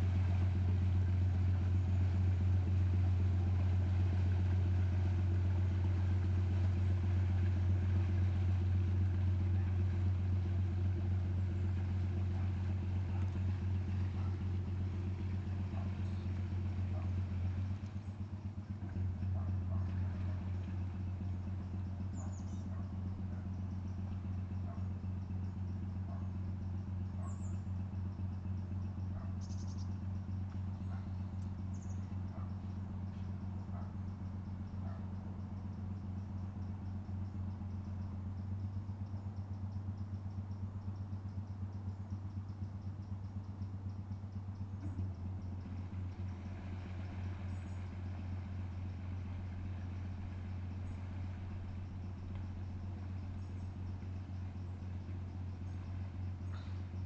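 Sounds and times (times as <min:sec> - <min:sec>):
diesel engine running at low revs: 0:00.0 - 0:57.0.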